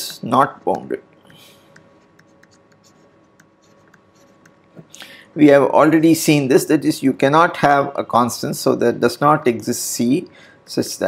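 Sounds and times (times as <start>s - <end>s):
faint steady hum: 0.0s - 11.0s
pen stylus scratching on tablet: 1.9s - 4.6s.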